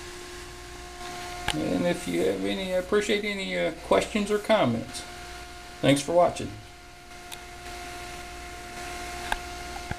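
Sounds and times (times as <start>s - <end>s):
hiss: 0.0s - 5.9s
motor humming with high tone: 0.0s - 9.9s.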